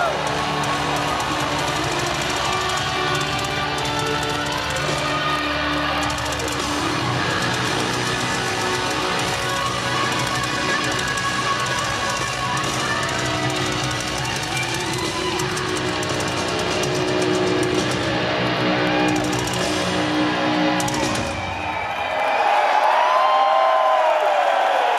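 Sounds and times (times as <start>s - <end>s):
heavy metal band playing live: 0.0s - 21.8s
crowd cheering and whooping: 0.0s - 24.9s.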